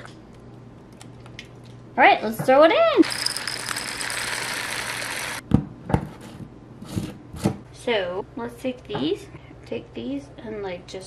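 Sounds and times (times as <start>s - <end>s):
seasoning pouring into plastic cup: 3.0s - 5.4s.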